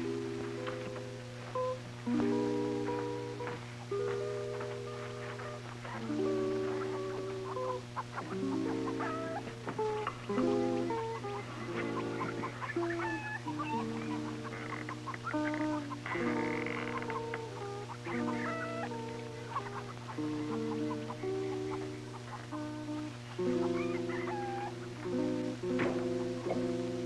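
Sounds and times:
slow melody over sustained chords: 0:00.0 - 0:27.0.

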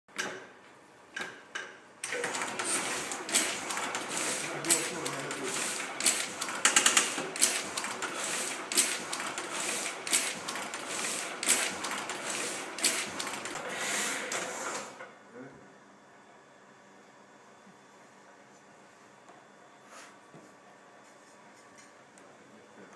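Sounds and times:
printing press clattering: 0:02.0 - 0:15.0.

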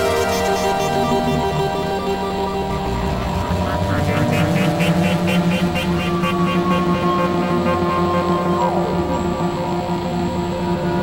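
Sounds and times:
rapid synth pulsing: 0:00.0 - 0:10.1
synthesizer drone: 0:00.0 - 0:11.0.

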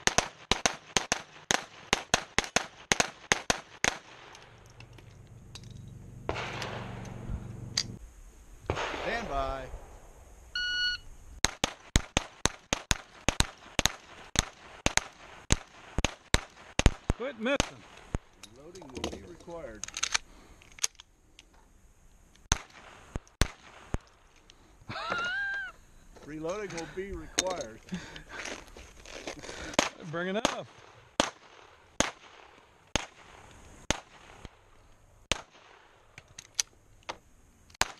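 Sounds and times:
gunshots in quick succession: 0:00.0 - 0:04.3, 0:06.3 - 0:07.0, 0:08.7 - 0:09.9, 0:11.4 - 0:18.0, 0:29.8 - 0:34.5, 0:35.3 - 0:35.8
gunshots with echo: 0:06.3 - 0:07.1, 0:08.7 - 0:09.9.

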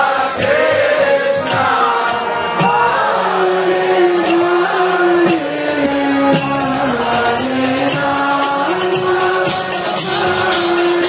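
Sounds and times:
devotional mantra chanting: 0:00.0 - 0:11.0
instrumental accompaniment: 0:00.0 - 0:11.0
sharp percussion strikes: 0:00.0 - 0:11.0.

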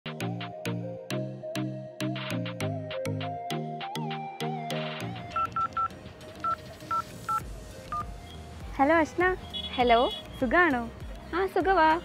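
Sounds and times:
background music: 0:00.0 - 0:12.0
phone keypad beeps: 0:05.3 - 0:08.1.

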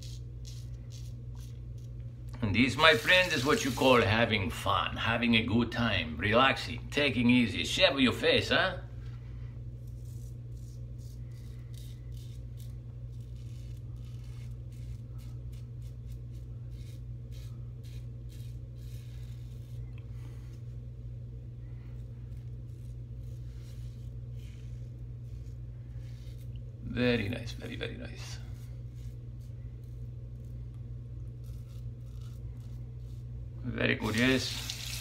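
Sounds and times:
razor rasping through stubble: 0:00.0 - 0:04.3, 0:09.8 - 0:20.8, 0:22.0 - 0:33.4, 0:34.0 - 0:35.0
steady low hum: 0:00.0 - 0:35.0.

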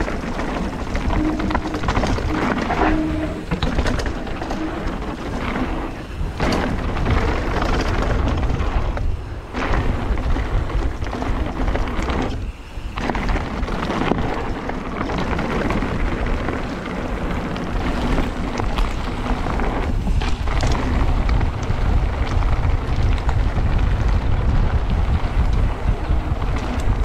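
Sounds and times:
low hum: 0:00.0 - 0:07.3
bike rattling: 0:00.0 - 0:27.0
wind rumble on microphone: 0:00.0 - 0:27.0.

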